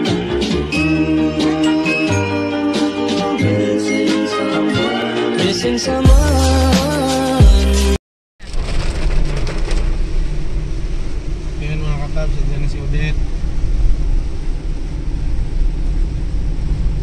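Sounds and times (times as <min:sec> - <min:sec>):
car running on wet road: 0:08.4 - 0:17.0.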